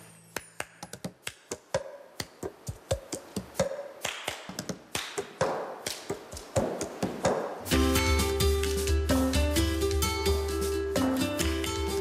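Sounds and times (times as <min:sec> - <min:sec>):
hand claps: 0:00.4 - 0:07.6, 0:08.4 - 0:09.2.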